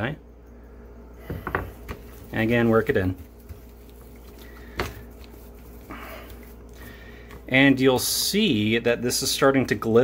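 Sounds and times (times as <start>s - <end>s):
hands rubbing wet skin: 1.7s - 7.8s.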